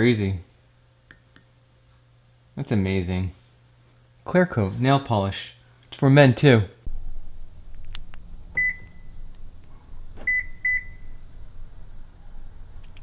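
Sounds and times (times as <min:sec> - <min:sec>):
low outdoor rumble: 0:06.8 - 0:13.0
car lock beeps: 0:10.3 - 0:11.0.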